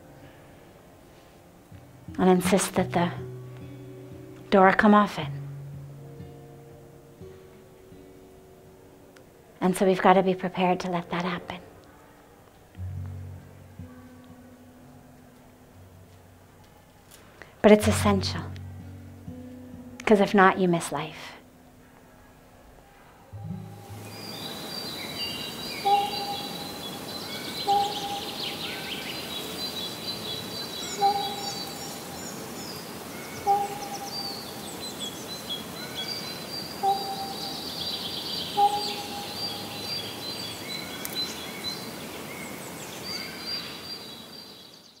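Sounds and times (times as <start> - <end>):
outdoor hiss: 12.8 - 22.0, 22.7 - 45.0
low clear bird call: 23.3 - 44.9
birds chirping and trilling: 23.3 - 45.0.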